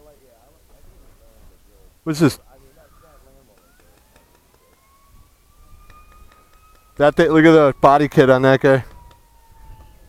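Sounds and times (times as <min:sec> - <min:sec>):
faint high whine rising in pitch: 0:02.1 - 0:10.0.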